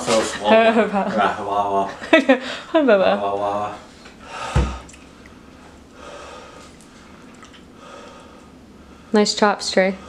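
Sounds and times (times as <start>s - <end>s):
man breathing: 4.2s - 9.2s.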